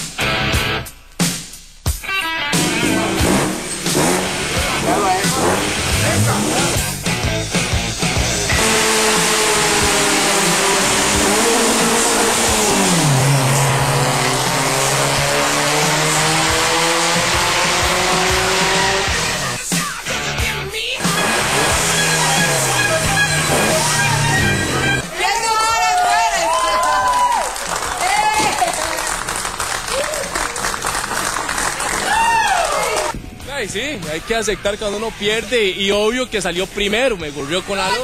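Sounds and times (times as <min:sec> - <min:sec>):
car engines revving: 0:02.5 - 0:25.0
loud steady rush: 0:02.5 - 0:25.6
tyre noise: 0:21.0 - 0:25.0.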